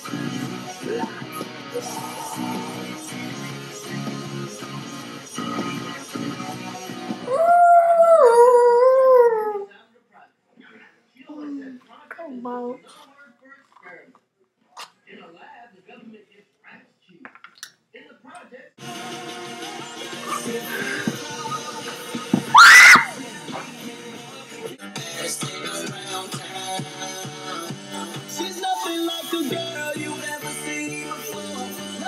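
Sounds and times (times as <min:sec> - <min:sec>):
pop song: 0:00.0 - 0:08.7, 0:18.8 - 0:32.0
girl screaming high-pitched: 0:22.5 - 0:23.2
loud howl: 0:22.5 - 0:23.2.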